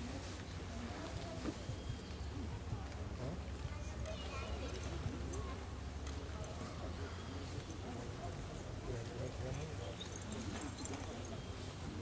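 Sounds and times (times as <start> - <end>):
onlookers' indistinct voices: 0.0 - 12.0.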